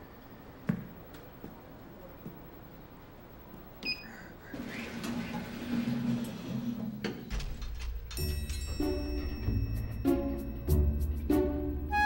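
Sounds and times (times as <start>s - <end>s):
high elevator ding: 8.1s - 10.5s.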